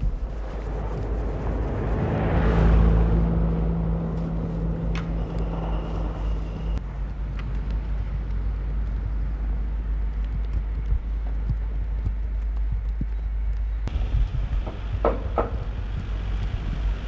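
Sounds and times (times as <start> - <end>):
car driving on snow: 0.0 - 12.6, 13.8 - 17.0
car engine rumble: 0.0 - 17.0.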